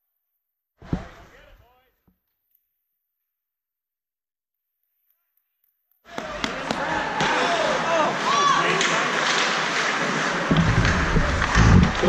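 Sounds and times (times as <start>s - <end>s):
echoing arena noise: 6.1s - 12.0s.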